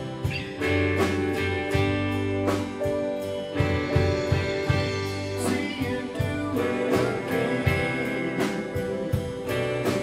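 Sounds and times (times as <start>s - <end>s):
country band instrumental: 0.0s - 10.0s.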